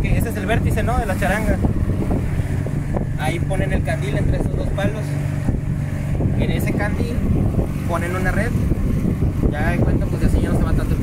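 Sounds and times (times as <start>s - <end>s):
boat motor rumbling: 0.0s - 11.0s
wind buffeting microphone: 0.0s - 11.0s.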